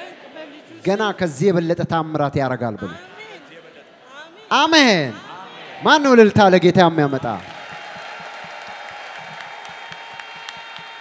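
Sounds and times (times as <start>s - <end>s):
crowd applauding: 7.1s - 11.0s.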